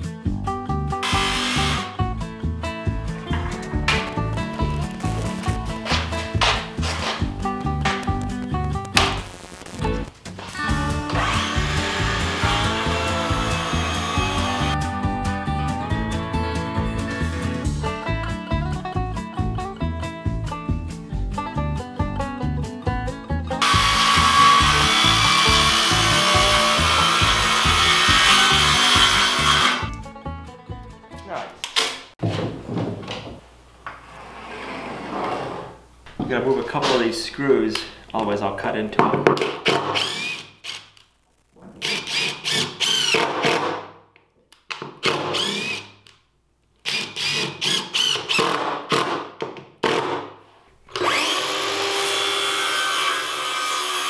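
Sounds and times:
background music with beat: 0.0 - 28.4
jigsaw cutting wood: 1.0 - 2.0, 11.1 - 14.8, 23.6 - 29.9, 39.6 - 40.8, 41.8 - 43.7, 45.0 - 45.9, 46.8 - 49.2, 50.9 - 54.0.

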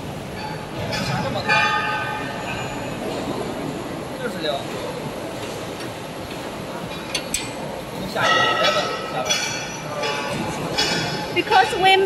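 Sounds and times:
workshop background noise: 0.0 - 12.0.

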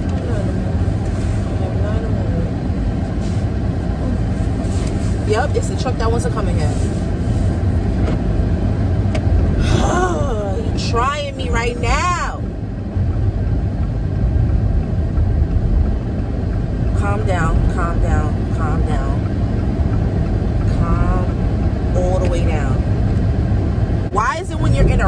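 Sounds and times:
woman's voice: 0.0 - 0.7, 1.4 - 2.6, 5.2 - 7.0, 9.6 - 12.5, 16.9 - 19.3, 20.7 - 22.8, 24.1 - 25.0
car cabin rumble: 0.0 - 25.0.

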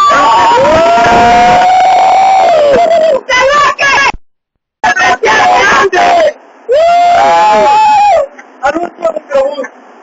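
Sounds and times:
people shouting a long cry: 0.0 - 4.1, 4.8 - 8.3.

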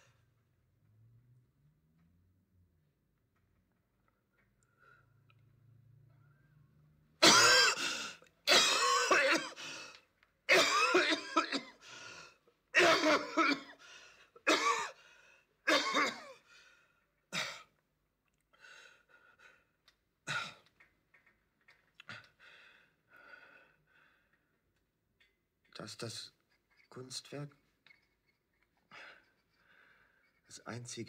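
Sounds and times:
man coughing: 7.2 - 9.6, 10.5 - 11.8, 12.8 - 13.8, 14.4 - 15.0, 15.7 - 16.4.

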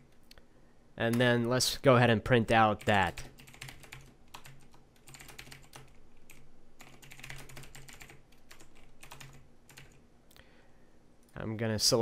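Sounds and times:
typing on computer keyboard: 2.8 - 10.0.

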